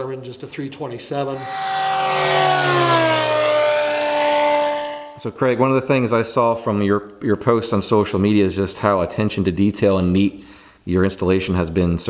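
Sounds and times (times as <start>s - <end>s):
propeller plane passing low: 1.4s - 5.2s.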